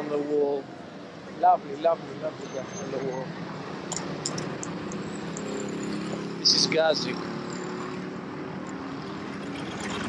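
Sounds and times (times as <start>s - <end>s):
street traffic noise: 0.0s - 10.0s
motorcycle passing by: 4.7s - 10.0s.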